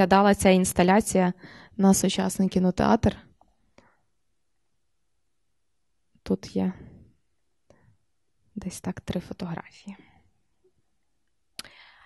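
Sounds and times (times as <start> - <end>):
woman speaking: 0.0 - 3.3, 6.3 - 7.0, 8.6 - 10.0.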